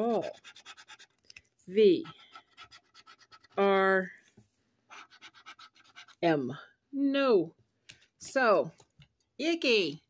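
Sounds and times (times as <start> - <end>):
scratching on lottery ticket: 0.0 - 1.2, 2.0 - 3.7, 4.9 - 6.3.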